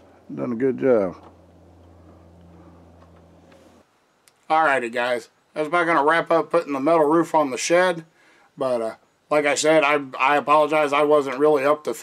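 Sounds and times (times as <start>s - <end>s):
faint low hum: 0.0s - 11.9s.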